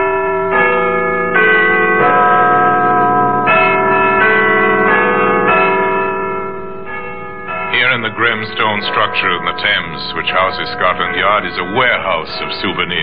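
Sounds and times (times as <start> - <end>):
tower bells chiming a tune: 0.0 - 13.0.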